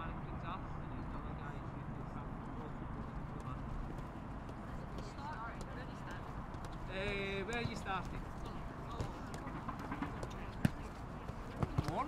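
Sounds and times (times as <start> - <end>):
light footsteps on grass: 2.4 - 12.0
ball being kicked: 8.9 - 12.0
ball touches on grass: 10.1 - 12.0.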